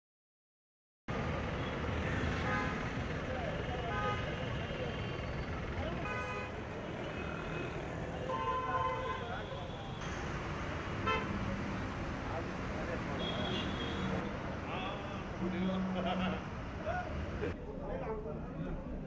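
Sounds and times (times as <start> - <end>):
traffic engine noise: 1.1 - 19.0
voices: 3.0 - 10.1, 10.7 - 19.0
vehicle horns honking: 3.8 - 4.6, 6.0 - 7.3, 8.2 - 9.9, 11.0 - 11.4, 13.2 - 14.2.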